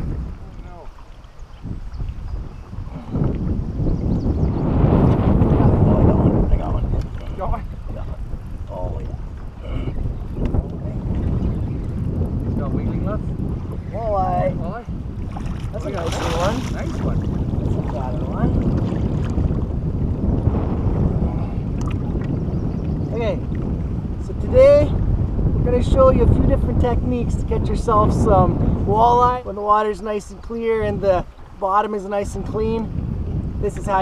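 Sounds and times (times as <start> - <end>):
water slapping boat hull: 0.0 - 34.0
wind buffeting microphone: 0.0 - 34.0
steady low rumble: 4.0 - 29.1.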